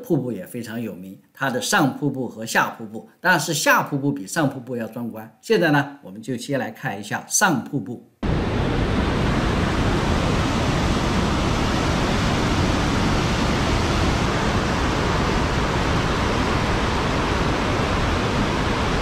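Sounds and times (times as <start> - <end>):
rush of falling water: 8.2 - 19.0.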